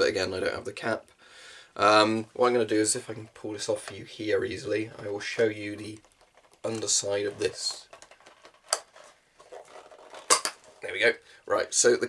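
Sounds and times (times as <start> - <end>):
rubber and plastic rubbing: 2.4 - 11.0.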